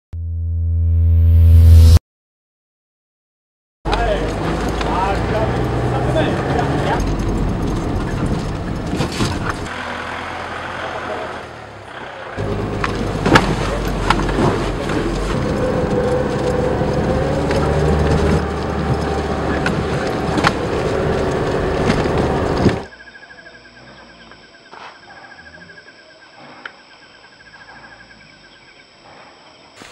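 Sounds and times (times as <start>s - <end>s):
knocks and rattles from bumps: 3.9s - 9.7s, 12.4s - 22.9s
vehicle engine and road rumble: 3.9s - 22.9s.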